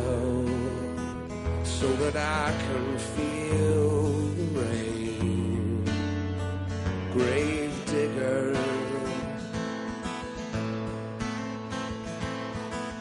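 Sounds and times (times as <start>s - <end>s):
acoustic guitar strumming chords: 0.0s - 13.0s.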